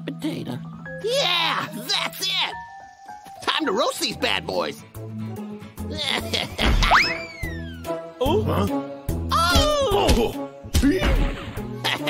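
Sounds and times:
cartoon bazooka thump: 6.6s - 7.2s.

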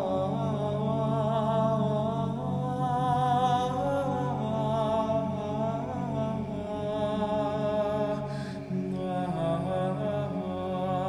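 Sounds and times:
choir singing chant: 0.0s - 11.0s.

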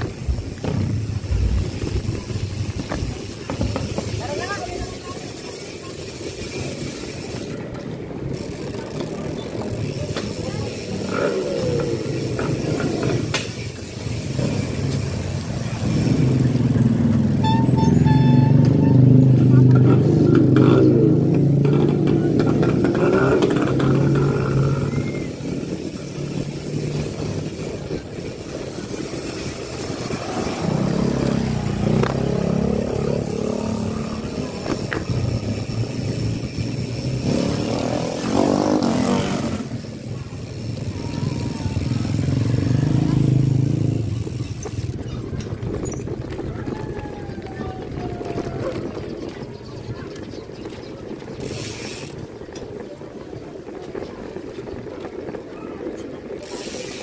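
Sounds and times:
motorcycle engines passing: 0.0s - 57.0s.

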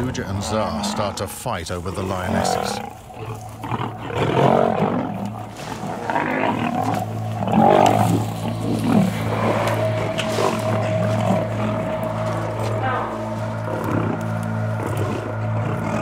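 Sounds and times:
lions snarling and growling: 0.0s - 16.0s.

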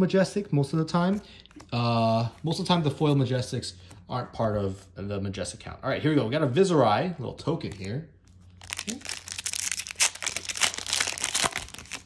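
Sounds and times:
foil wrapper tearing and crinkling: 8.6s - 12.0s.

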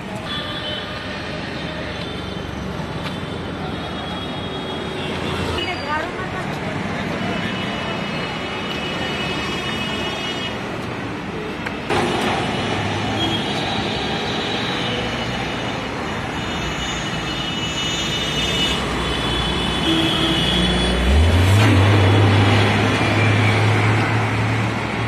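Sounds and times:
car and bus engines: 4.8s - 25.0s
bus passing close by: 18.2s - 25.0s.

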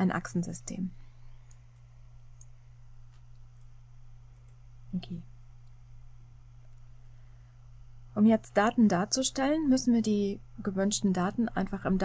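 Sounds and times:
steady low hum: 0.0s - 12.0s
computer mouse clicks: 1.4s - 4.6s.

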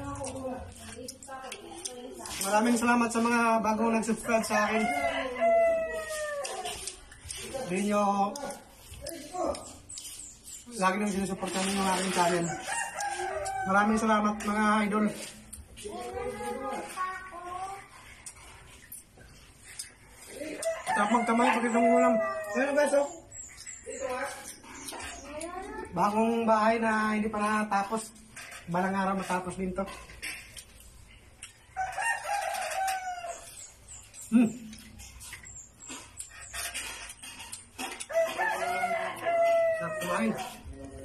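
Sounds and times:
rooster crowing: 4.2s - 6.8s, 12.4s - 14.3s, 20.6s - 23.0s, 31.7s - 33.6s, 38.1s - 40.4s
faint high chirping: 5.3s - 13.7s, 17.9s - 26.4s, 30.8s - 39.3s.

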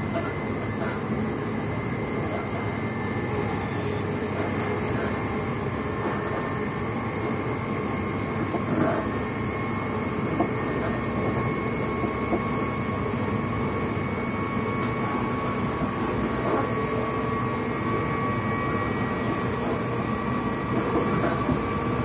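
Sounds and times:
thin steady whine: 0.0s - 22.0s
train wheels rumbling on track: 0.0s - 22.0s.

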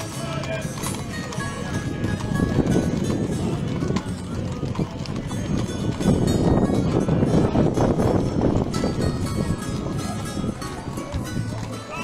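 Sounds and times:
horse hooves clip-clopping on asphalt: 0.0s - 12.0s
music playing: 0.0s - 12.0s.

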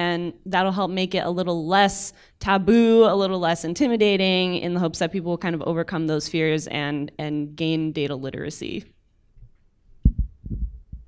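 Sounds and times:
microphone handling thumps: 9.4s - 11.0s.

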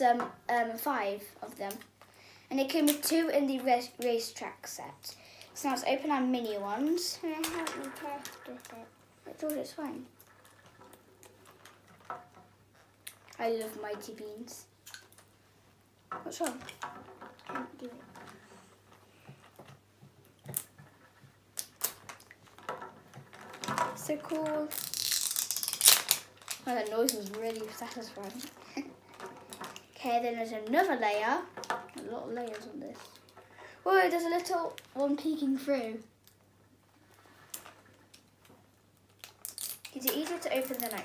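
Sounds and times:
plastic packaging crackling: 6.4s - 15.4s, 16.0s - 36.4s, 37.0s - 41.0s.

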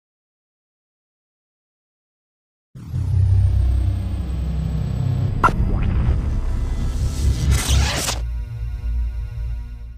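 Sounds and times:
deep bass rumble: 2.8s - 7.6s.

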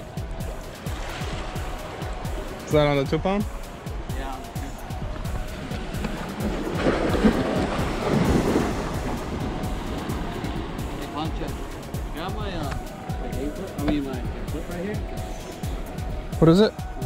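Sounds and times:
wind buffeting microphone: 0.0s - 16.4s
background music: 0.0s - 17.0s
waves washing against rocks: 0.5s - 12.9s.

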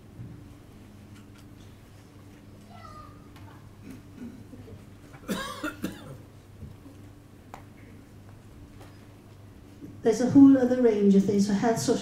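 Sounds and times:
person coughing: 5.2s - 6.2s.

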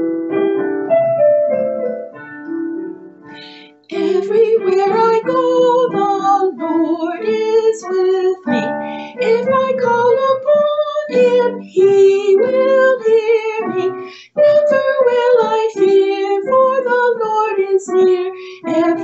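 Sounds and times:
instrumental accompaniment: 0.0s - 19.0s
woman singing: 3.4s - 19.0s.

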